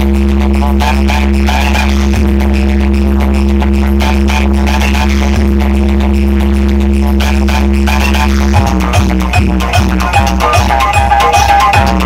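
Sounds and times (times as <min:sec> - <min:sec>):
deep bass drone: 0:00.0 - 0:12.0
electronic dance music: 0:00.0 - 0:12.0
thumping beat: 0:00.0 - 0:12.0.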